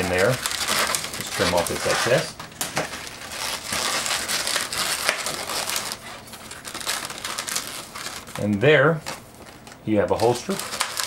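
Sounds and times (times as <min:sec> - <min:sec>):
balloons rubbing and squeaking: 0:00.0 - 0:11.0.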